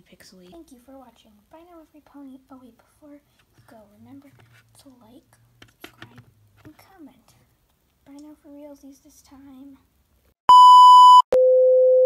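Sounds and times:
high steady beep: 0:10.5 - 0:12.0.

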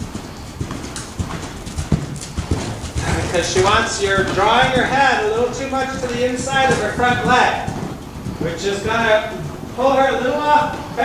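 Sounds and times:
horse hoofbeats on dirt: 0:00.0 - 0:11.0.

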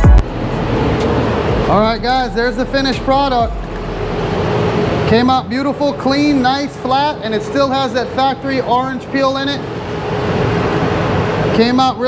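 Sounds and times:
background music: 0:00.0 - 0:04.5
steady rush of air: 0:00.0 - 0:12.0
man speaking: 0:01.7 - 0:03.7, 0:05.1 - 0:09.6.

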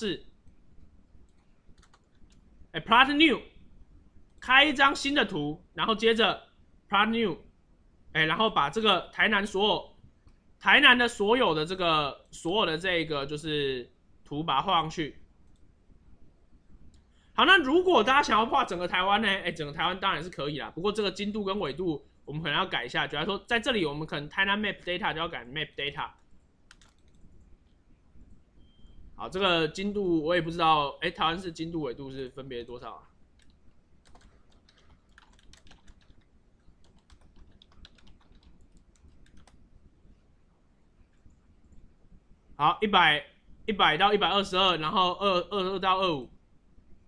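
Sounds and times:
computer mouse click: 0:01.2 - 0:02.4, 0:26.2 - 0:29.0, 0:33.4 - 0:39.6.

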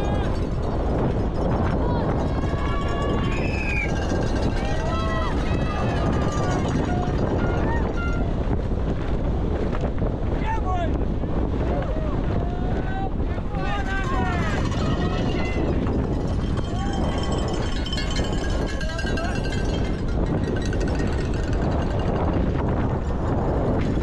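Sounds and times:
wind rush on camera: 0:00.0 - 0:24.0
spectators shouting and whooping: 0:01.8 - 0:08.3, 0:11.6 - 0:15.8.

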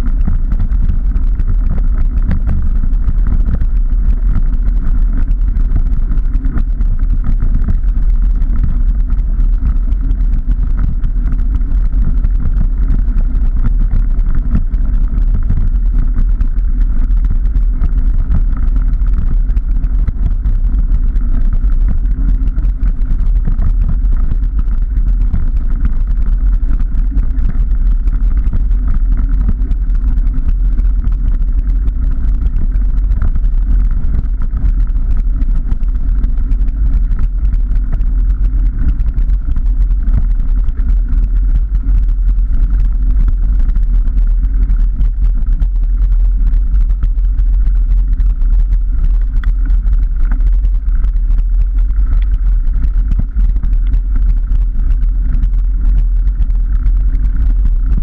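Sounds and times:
bike tyre rolling on gravel: 0:00.0 - 0:57.2.

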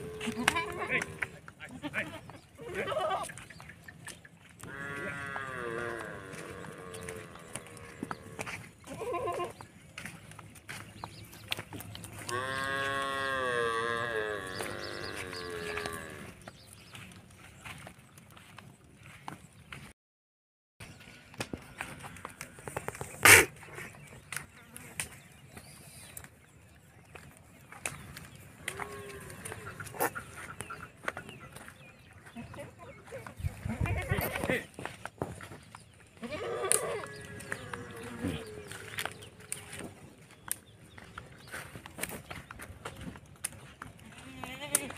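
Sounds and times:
goat bleating: 0:00.0 - 0:03.3, 0:04.7 - 0:08.2, 0:08.9 - 0:09.6, 0:36.2 - 0:39.0, 0:44.0 - 0:44.9.

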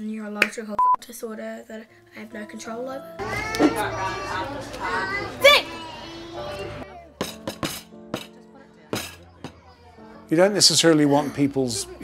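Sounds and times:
children chattering: 0:03.2 - 0:07.2, 0:08.3 - 0:12.0.

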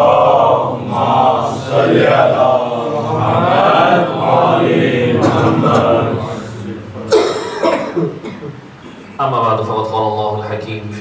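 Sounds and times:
man coughing: 0:07.0 - 0:09.1.

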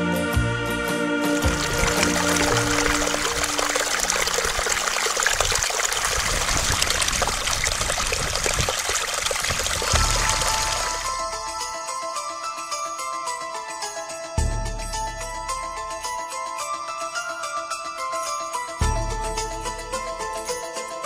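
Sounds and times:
brook trickling over rocks: 0:01.4 - 0:11.6.

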